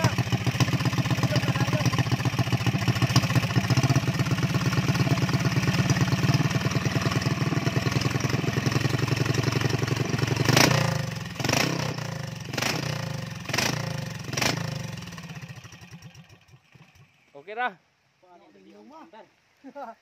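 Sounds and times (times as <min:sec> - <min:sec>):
engine bangs: 0:00.0 - 0:17.3
single-cylinder engine running: 0:00.0 - 0:17.3.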